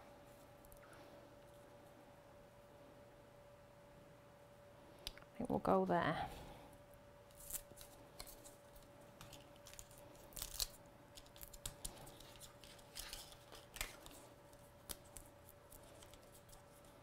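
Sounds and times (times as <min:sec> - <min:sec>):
paper backing peeling rustles: 0:07.3 - 0:17.0.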